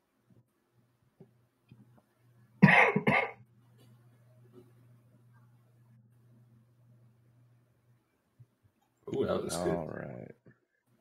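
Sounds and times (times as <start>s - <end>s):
faint low hum: 0.0s - 11.0s
person coughing: 2.6s - 3.4s.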